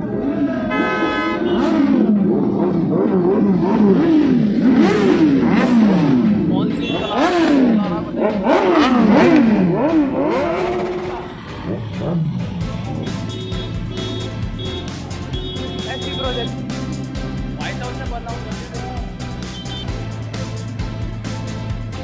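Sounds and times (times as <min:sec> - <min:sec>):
motorcycle engines revving: 0:00.0 - 0:22.0.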